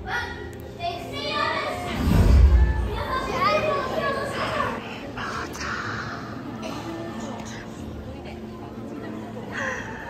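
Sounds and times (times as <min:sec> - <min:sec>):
crowd voices echoing in a hall: 0:00.0 - 0:10.0.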